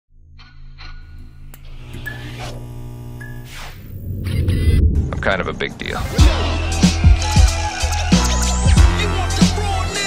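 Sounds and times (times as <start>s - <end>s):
low droning hum: 1.6s - 5.9s
whoosh: 3.5s - 6.5s.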